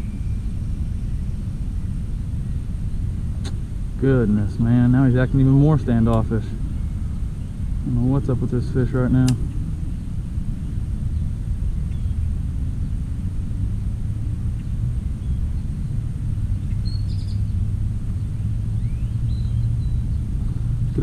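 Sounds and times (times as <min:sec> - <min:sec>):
faint bird chirps: 0:00.0 - 0:03.0, 0:16.6 - 0:20.3
low outdoor rumble: 0:00.0 - 0:21.0.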